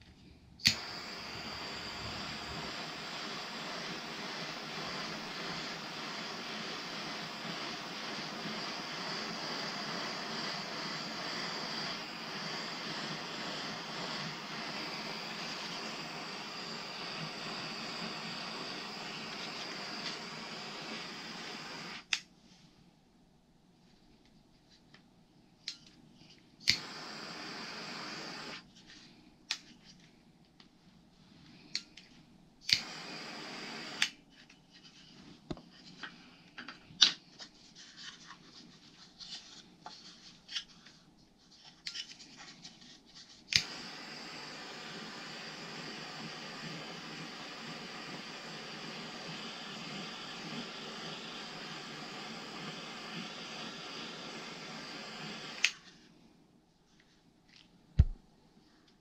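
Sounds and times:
torch flame hissing: 0.6 - 22.2, 26.6 - 28.7, 32.6 - 34.2, 43.3 - 55.9
gas torch igniter clicking: 0.6 - 22.3, 26.6 - 28.6, 32.6 - 34.2, 43.5 - 55.8.

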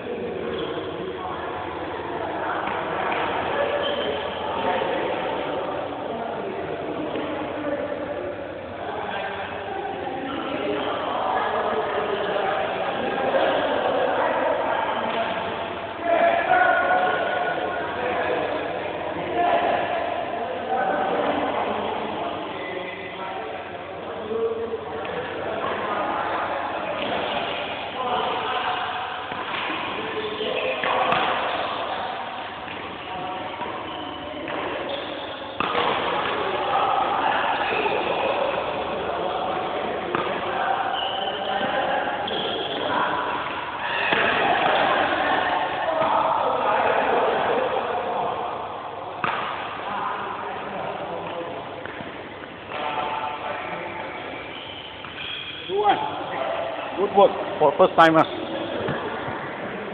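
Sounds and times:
people talking indoors: 0.0 - 59.9.

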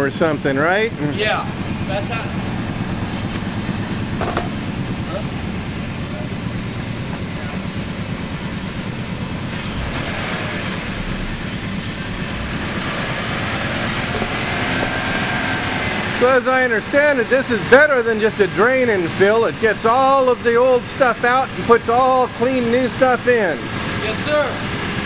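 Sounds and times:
air-powered machine rushing hiss: 0.0 - 25.0.

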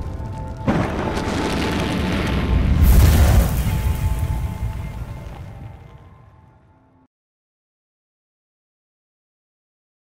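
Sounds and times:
deep boom: 0.0 - 6.0
rushing rumbling noise: 0.0 - 6.2
background music: 0.0 - 7.1.

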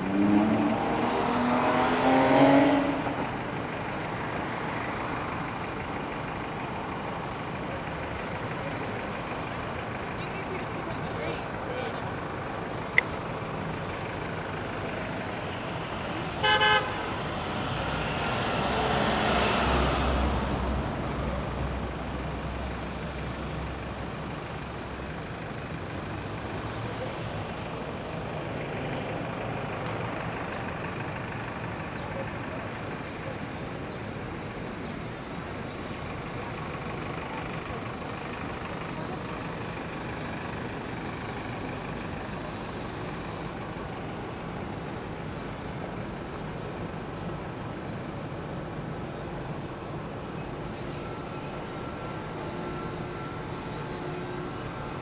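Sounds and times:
hum of passing cars: 0.0 - 55.0
bus engine rumble: 2.8 - 55.0
sharp click: 12.9 - 13.4
vehicle horn toot: 16.4 - 17.1.

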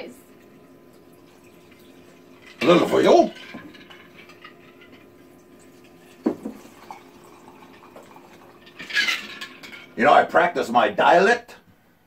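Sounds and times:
liquid trickling into a glass: 0.3 - 10.0.

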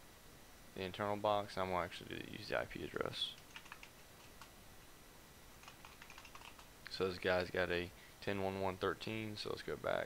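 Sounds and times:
faint keyboard typing: 3.2 - 4.6, 5.6 - 6.7.

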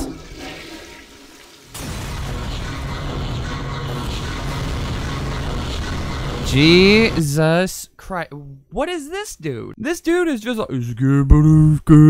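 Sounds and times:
low hum: 1.8 - 7.2.

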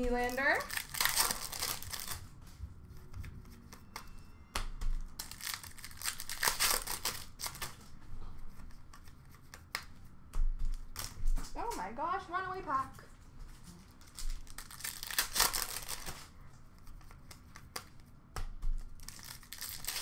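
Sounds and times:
card wrappers crinkling and tearing: 0.0 - 2.4, 5.0 - 8.0, 13.9 - 16.3, 19.0 - 20.0
person speaking: 11.6 - 13.1.

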